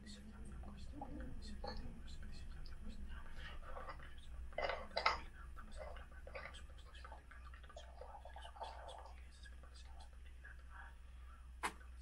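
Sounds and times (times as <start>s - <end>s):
faint low hum: 0.0s - 12.0s
man whispering: 0.0s - 12.0s.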